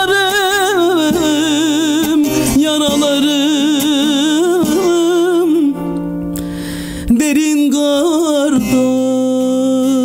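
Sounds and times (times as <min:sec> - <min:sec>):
man singing: 0:00.0 - 0:06.1, 0:07.0 - 0:10.0
long-necked lute playing: 0:00.0 - 0:10.0.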